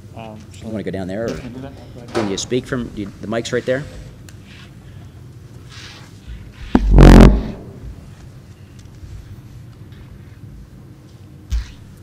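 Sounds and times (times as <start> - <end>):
microphone thump and rumble: 6.7 - 8.0
microphone click: 6.8 - 7.6.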